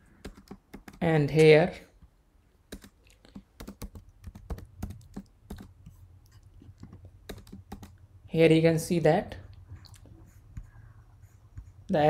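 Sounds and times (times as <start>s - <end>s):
computer keyboard typing: 0.2s - 1.5s, 2.7s - 8.0s.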